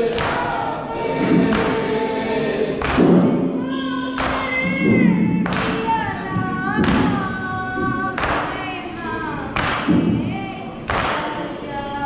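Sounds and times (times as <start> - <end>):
men chanting a lament in unison: 0.0 - 3.2
chest beating slaps: 2.8 - 3.6.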